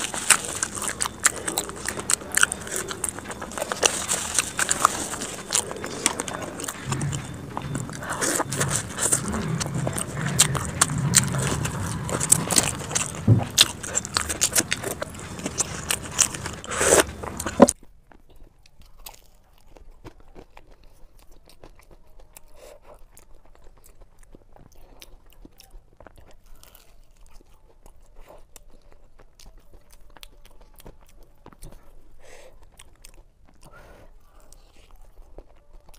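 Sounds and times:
crunching and chewing food: 0:00.0 - 0:35.9.

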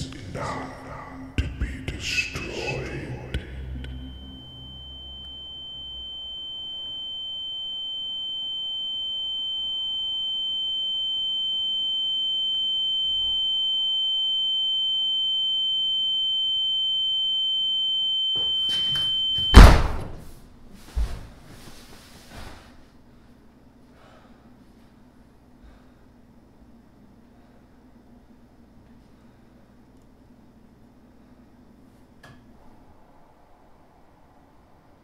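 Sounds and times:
high steady ringing tone: 0:02.7 - 0:19.8
loud thump: 0:19.5 - 0:20.2.

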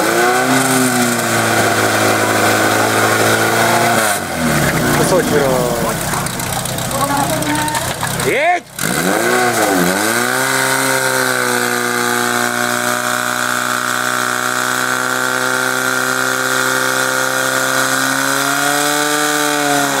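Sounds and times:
pump engine running at high revs: 0:00.0 - 0:20.0.

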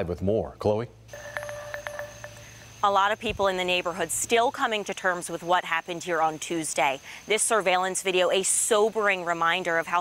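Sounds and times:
faint steady tones: 0:01.0 - 0:10.0
woman speaking: 0:02.8 - 0:10.0.

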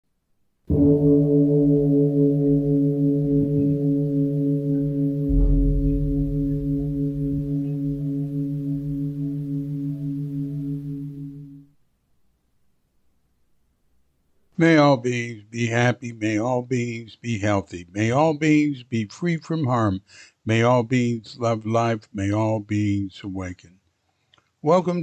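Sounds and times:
deep bell ringing: 0:00.7 - 0:11.6
low bump and rumble: 0:05.3 - 0:09.0.

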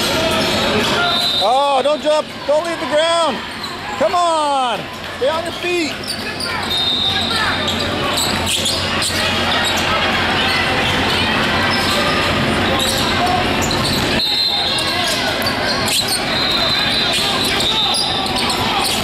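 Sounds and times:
echoing voices and crowd chatter: 0:00.0 - 0:19.0.

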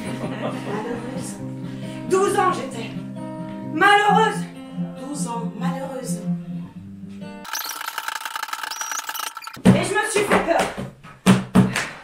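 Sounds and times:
high-pitched rattling buzz: 0:07.5 - 0:09.6.

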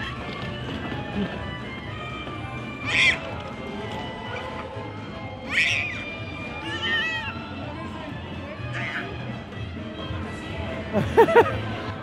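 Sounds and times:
background music: 0:00.0 - 0:12.0
toddler squealing: 0:02.8 - 0:03.3, 0:05.4 - 0:07.5, 0:08.7 - 0:09.2.

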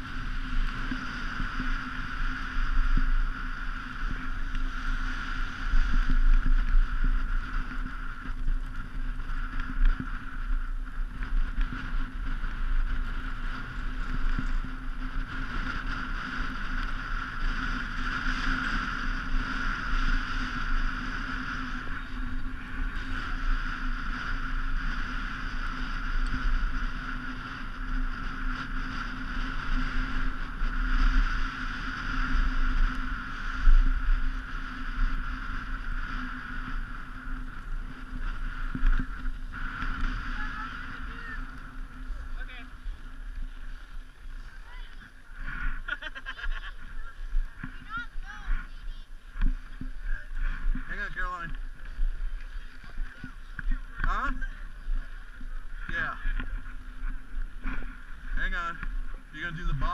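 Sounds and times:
skis sliding over snow: 0:00.0 - 0:59.9
wind buffeting microphone: 0:00.0 - 0:59.9.

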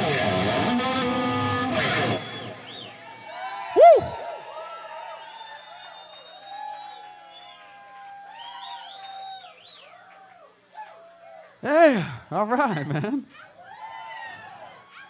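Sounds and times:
audience cheering and whooping: 0:02.4 - 0:11.2
loud shout: 0:03.2 - 0:05.2, 0:13.3 - 0:15.0.

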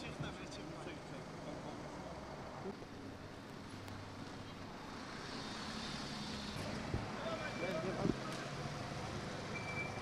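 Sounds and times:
low traffic hum: 0:00.0 - 0:10.0.

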